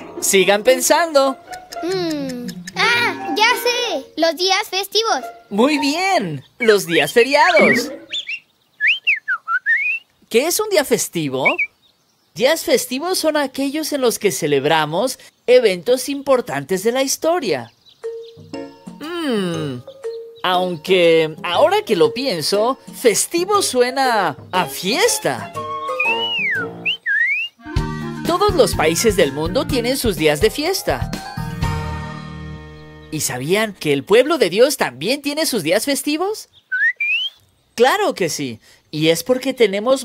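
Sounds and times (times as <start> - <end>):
soft background music: 0.0 - 4.3, 4.9 - 8.1, 18.0 - 26.9, 27.7 - 34.2
cartoon bird chirping whistles: 6.6 - 10.1, 11.4 - 11.8, 25.8 - 27.8, 36.7 - 37.4
lively music with drum beat: 27.7 - 32.2.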